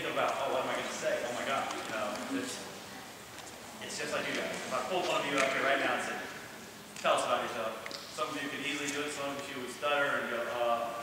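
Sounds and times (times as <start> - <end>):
man speaking: 0.0 - 2.8, 3.8 - 11.0.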